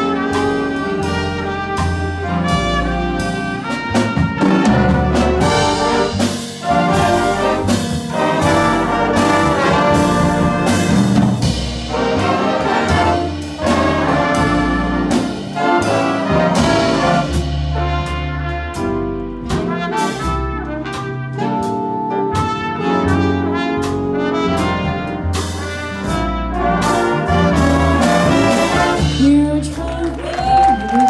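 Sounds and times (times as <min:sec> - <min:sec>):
big band jazz ballad: 0:00.0 - 0:31.0.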